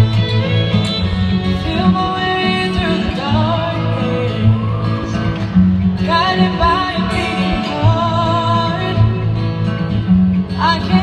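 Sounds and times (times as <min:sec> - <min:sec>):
strummed acoustic guitar: 0:00.0 - 0:11.0
woman singing through speakers: 0:01.2 - 0:05.4, 0:06.0 - 0:09.4, 0:10.5 - 0:11.0.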